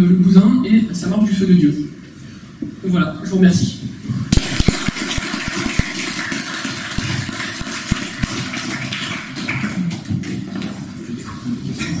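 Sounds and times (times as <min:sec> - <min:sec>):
audience applauding: 0:04.7 - 0:10.5.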